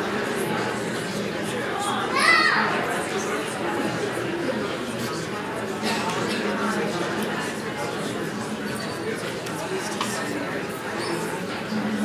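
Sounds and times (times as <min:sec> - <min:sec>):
murmur of many people chatting: 0:00.0 - 0:12.0.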